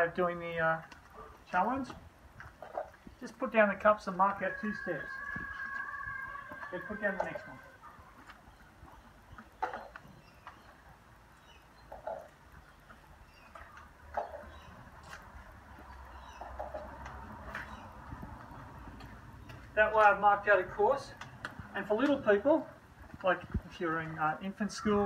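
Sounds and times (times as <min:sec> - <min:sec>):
footsteps on wet concrete: 0:00.0 - 0:25.0.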